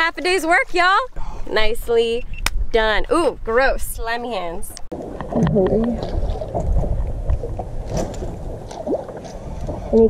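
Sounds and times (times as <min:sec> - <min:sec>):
wind buffeting microphone: 0:01.1 - 0:10.0
waves slapping boat hull: 0:04.9 - 0:10.0.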